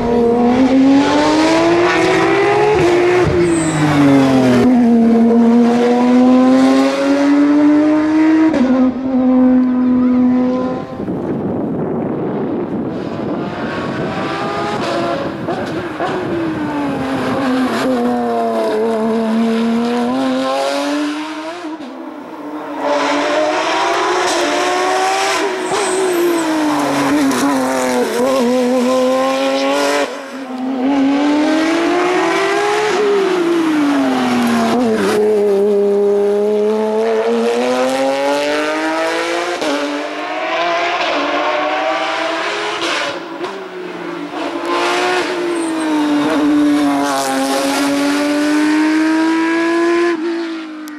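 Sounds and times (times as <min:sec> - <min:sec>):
race car engine revving: 0:00.0 - 0:11.2, 0:12.7 - 0:50.9.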